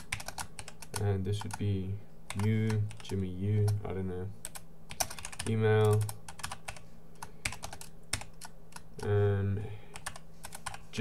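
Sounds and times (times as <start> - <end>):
typing on computer keyboard: 0.0 - 1.6, 2.3 - 3.8, 4.4 - 9.1, 9.9 - 10.8.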